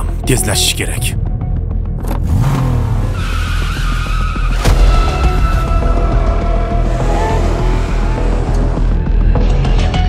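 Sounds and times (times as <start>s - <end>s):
car engine revving: 2.0s - 4.7s, 5.9s - 9.5s.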